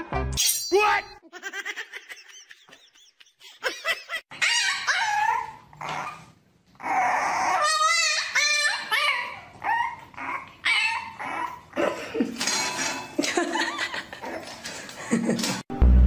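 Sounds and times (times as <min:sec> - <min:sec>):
puppy whining and yapping: 0:04.3 - 0:11.8.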